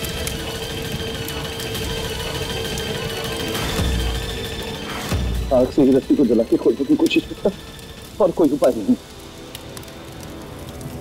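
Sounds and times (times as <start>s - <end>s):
held drone: 0.0s - 9.6s.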